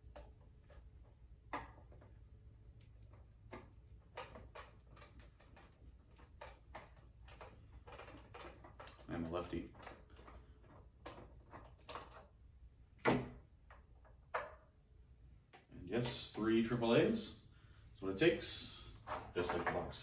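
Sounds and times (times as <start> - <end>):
plastic clicks and rattles: 2.8 - 12.4.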